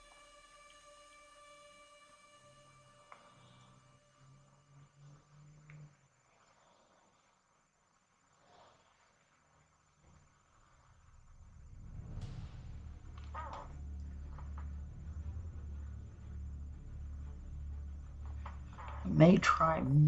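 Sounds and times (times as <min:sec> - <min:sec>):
low rumble: 0:10.1 - 0:20.0.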